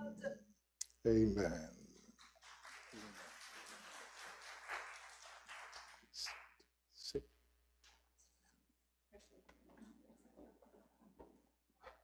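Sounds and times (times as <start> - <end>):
people rustling and shuffling: 9.2 - 12.0.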